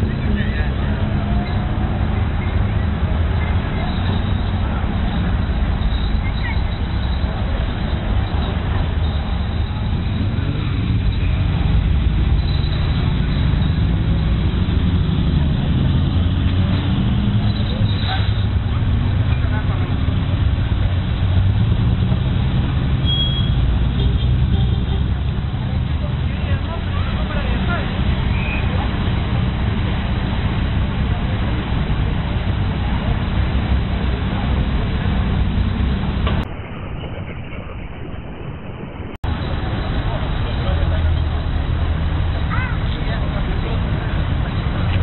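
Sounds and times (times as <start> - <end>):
car engines rumbling: 0.0 - 45.0
people talking: 0.0 - 45.0.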